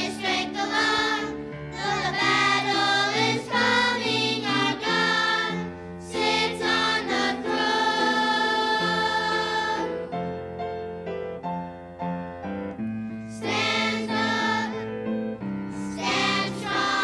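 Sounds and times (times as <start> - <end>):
children's choir singing: 0.0 - 10.1, 13.3 - 14.9, 15.8 - 17.0.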